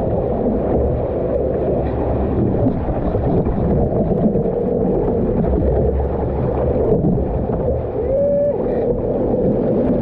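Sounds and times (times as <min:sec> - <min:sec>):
sea water splashing: 0:00.0 - 0:10.0.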